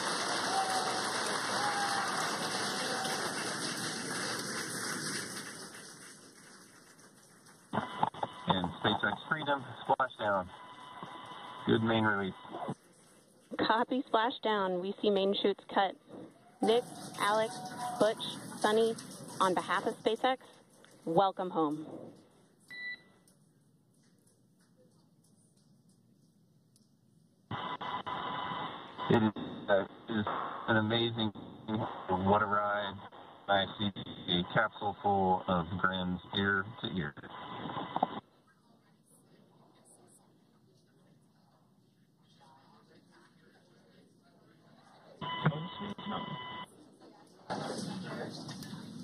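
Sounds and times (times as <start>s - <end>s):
radio channel hiss: 7.8s - 12.8s, 27.5s - 38.2s
two-tone electronic beep: 22.7s - 23.1s, 45.2s - 46.7s.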